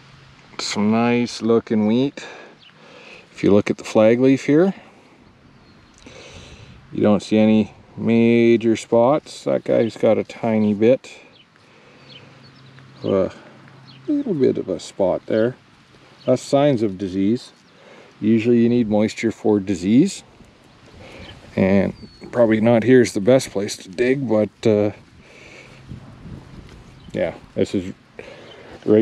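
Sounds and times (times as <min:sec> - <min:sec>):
wheat stalks rustling: 0:00.4 - 0:29.0
faint bird chirps: 0:05.0 - 0:06.5, 0:09.4 - 0:14.6, 0:21.0 - 0:22.6
wind on microphone: 0:20.3 - 0:22.5, 0:25.0 - 0:27.6.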